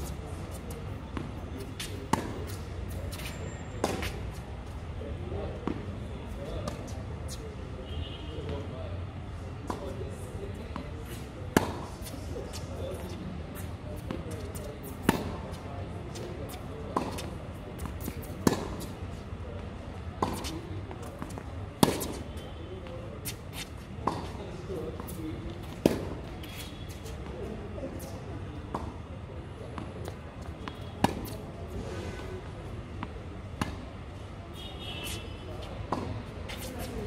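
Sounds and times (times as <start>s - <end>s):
tennis ball bouncing on court: 0.6s - 4.2s, 11.5s - 11.9s, 14.0s - 19.0s, 20.2s - 22.2s, 23.2s - 24.4s, 25.0s - 26.6s, 29.8s - 31.4s, 33.0s - 33.8s, 35.9s - 36.9s
tennis ball struck by rackets: 11.5s - 11.9s, 14.8s - 15.5s, 16.9s - 19.0s, 20.2s - 22.2s, 25.0s - 26.3s, 30.6s - 31.4s, 33.6s - 33.8s, 35.9s - 36.9s.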